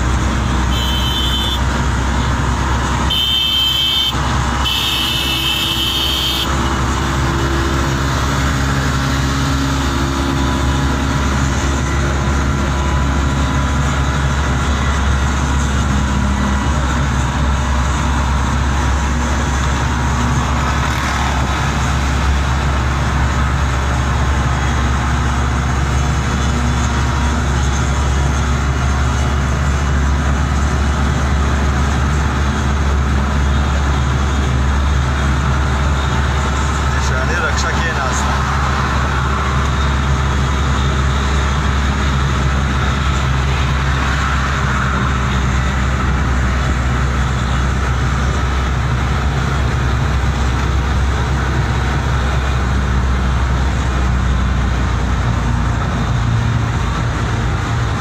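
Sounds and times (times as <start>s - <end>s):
two-stroke vehicles at speed: 0.0s - 58.0s
short high horn toots: 0.7s - 1.6s, 3.1s - 6.5s.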